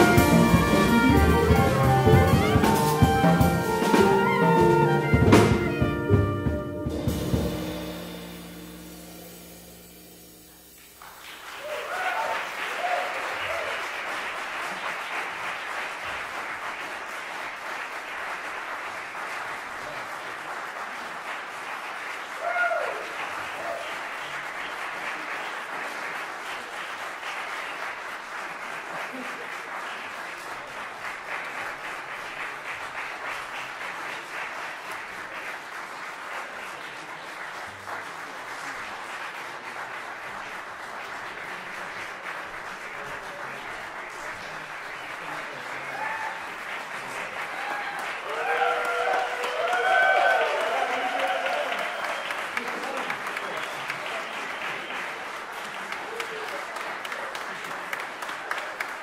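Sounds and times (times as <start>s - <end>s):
audience applauding: 0.0s - 59.0s
audience cheer: 11.4s - 14.1s, 22.2s - 24.1s, 45.7s - 55.2s.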